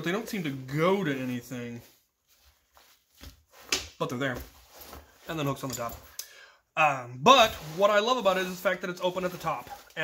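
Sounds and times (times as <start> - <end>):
rustling of nylon straps: 0.0 - 6.2, 7.3 - 10.0.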